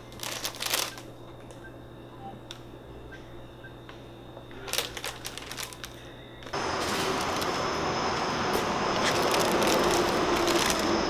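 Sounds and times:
scattered crackles: 0:00.0 - 0:01.6, 0:04.6 - 0:07.7, 0:08.5 - 0:11.0
outdoor night noise: 0:00.0 - 0:11.0.

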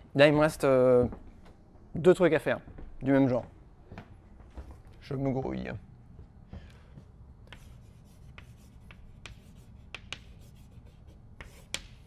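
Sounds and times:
chalk writing on chalkboard: 0:07.5 - 0:12.0.

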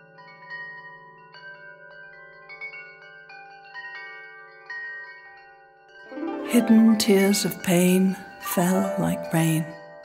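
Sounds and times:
soft chime notes: 0:06.0 - 0:10.0.

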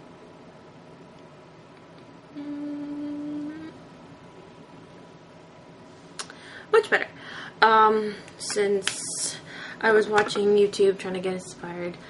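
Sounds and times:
faint room hiss: 0:00.0 - 0:12.0
woman humming: 0:02.3 - 0:03.9.

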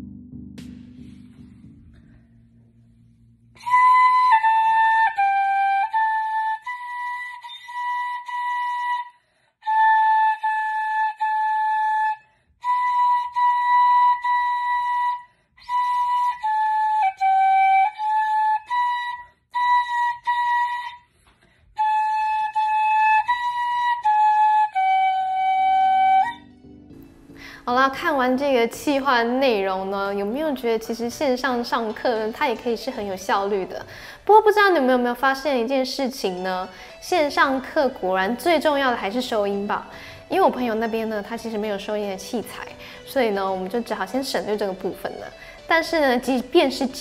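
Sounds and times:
side-blown flute tune: 0:03.6 - 0:21.1, 0:21.8 - 0:26.8.

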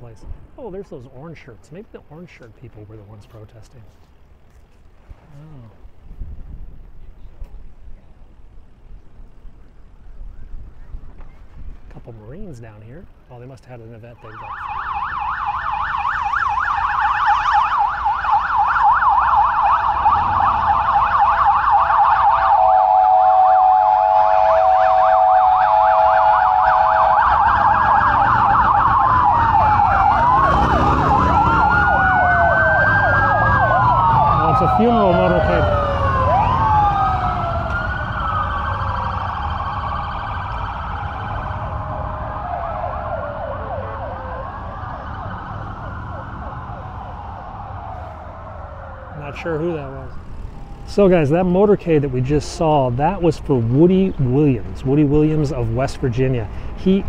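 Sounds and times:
steady horn-like siren tone: 0:14.2 - 0:51.1
sirens wailing: 0:14.2 - 0:56.4
police sirens yelping: 0:14.2 - 0:56.7.

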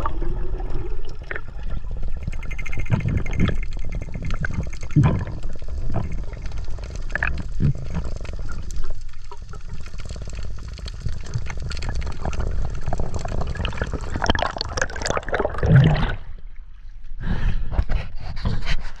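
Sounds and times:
crackling bubbles: 0:00.0 - 0:16.7
muffled underwater rushing water: 0:00.0 - 0:16.8.

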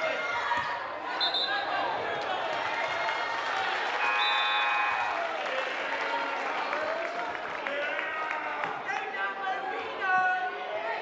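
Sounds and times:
crowd voices: 0:00.0 - 0:11.0
crowd applause: 0:02.0 - 0:09.1.

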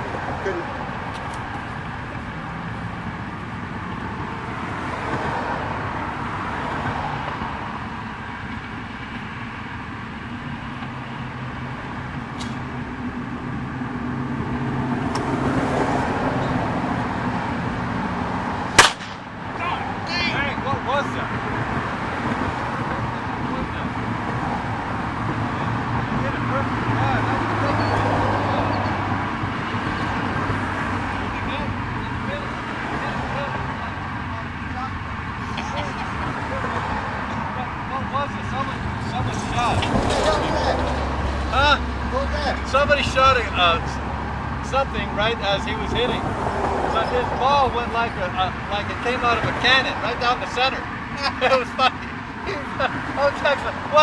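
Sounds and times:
exploding golf ball bang: 0:18.8 - 0:19.2.

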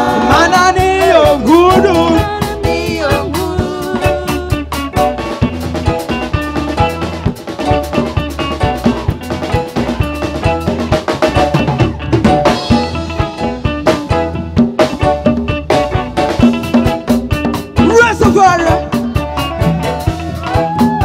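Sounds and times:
drum kit beat: 0:00.0 - 0:21.0
reggae band playing: 0:00.0 - 0:21.0.

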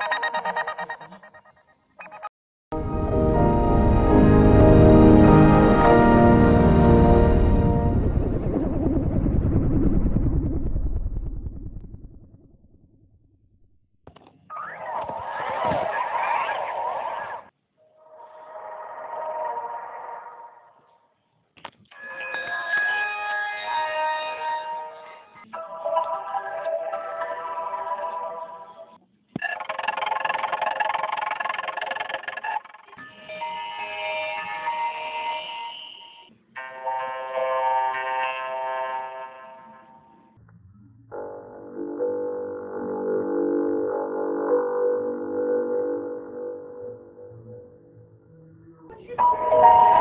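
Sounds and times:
effected chime with held tones: 0:00.0 - 0:02.2
warbling distorted startup chime: 0:00.0 - 0:02.2, 0:07.7 - 0:12.2.

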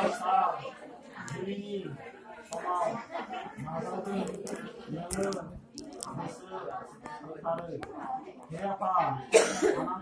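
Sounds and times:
people talking: 0:00.0 - 0:10.0
sharp cough: 0:09.3 - 0:10.0.

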